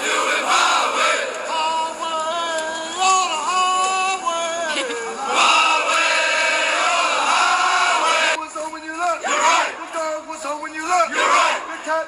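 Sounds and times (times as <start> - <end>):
group chanting marching cadence: 0.0 - 2.0, 5.2 - 8.4, 9.2 - 10.0, 11.0 - 11.9.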